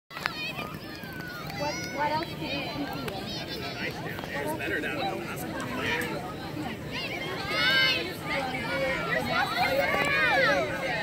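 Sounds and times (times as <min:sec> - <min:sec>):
children shouting: 0:00.2 - 0:04.1, 0:05.6 - 0:11.0.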